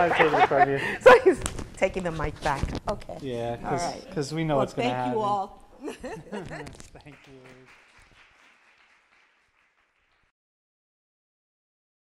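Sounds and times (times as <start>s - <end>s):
faint audience applause: 6.9s - 10.3s.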